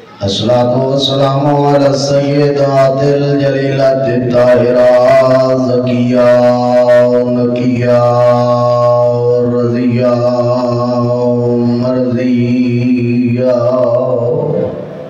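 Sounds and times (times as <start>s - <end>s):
man chanting through microphone: 0.0s - 15.0s.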